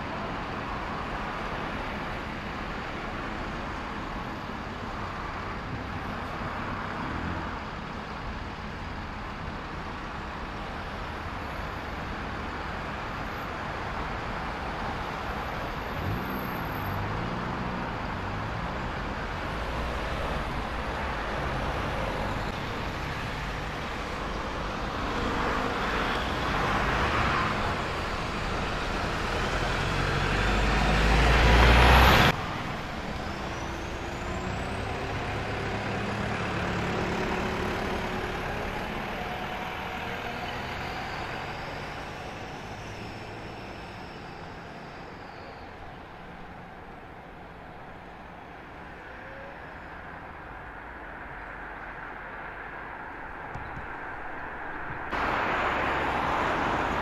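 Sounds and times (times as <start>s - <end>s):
diesel bus engine accelerating: 0.0s - 57.0s
traffic engines: 0.0s - 57.0s.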